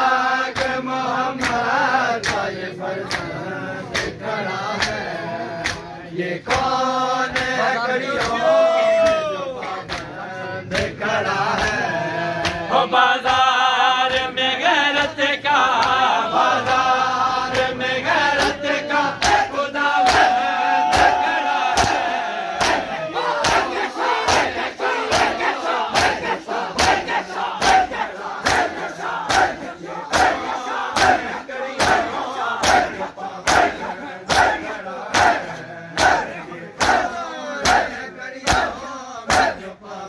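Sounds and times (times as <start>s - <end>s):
crowd chanting: 0.0s - 40.0s
hands beating chests in unison: 0.5s - 13.5s, 15.6s - 16.1s, 17.5s - 39.7s.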